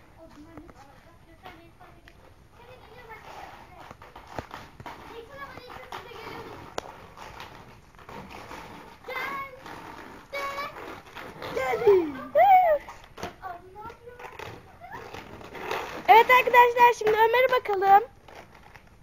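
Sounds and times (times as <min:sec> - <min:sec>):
child's voice: 0:00.2 - 0:03.9, 0:05.0 - 0:06.6, 0:09.0 - 0:15.2, 0:16.1 - 0:18.1
children chattering: 0:05.0 - 0:06.8, 0:09.0 - 0:15.3.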